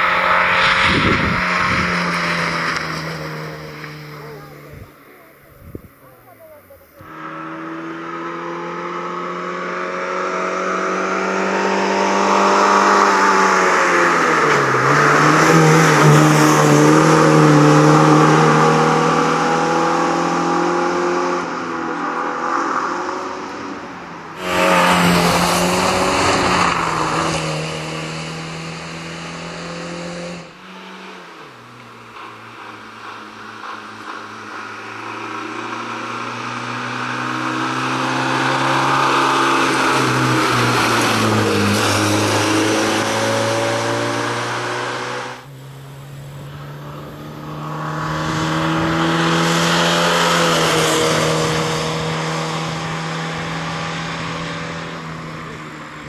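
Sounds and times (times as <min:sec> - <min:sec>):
rally car engine revving past: 0:00.0 - 0:05.9, 0:06.8 - 0:56.0.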